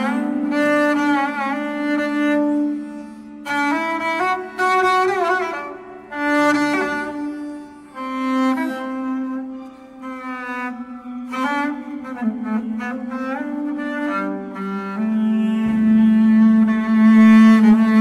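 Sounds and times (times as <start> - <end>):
bowed double bass: 0.0 - 18.0.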